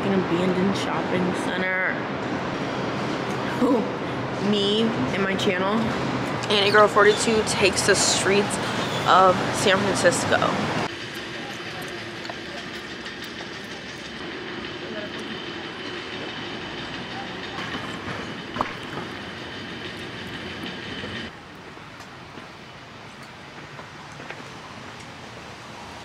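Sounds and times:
mechanical street rumble: 0:00.0 - 0:26.0.

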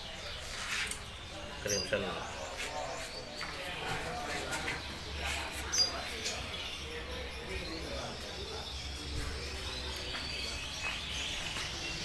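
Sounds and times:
caged birds chirping: 0:00.0 - 0:12.0.

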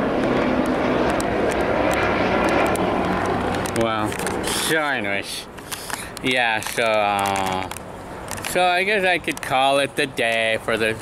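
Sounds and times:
helicopter flying low overhead: 0:00.0 - 0:11.0.

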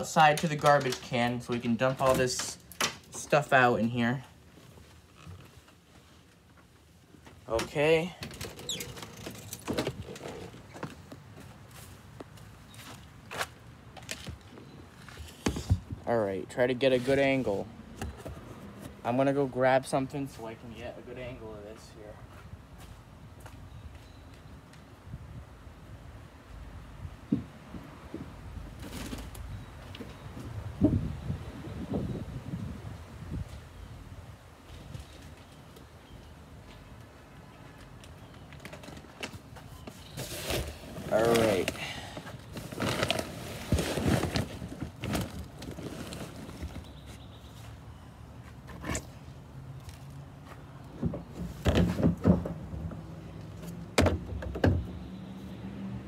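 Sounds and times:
handling knocks and bumps: 0:50.9 - 0:55.0.

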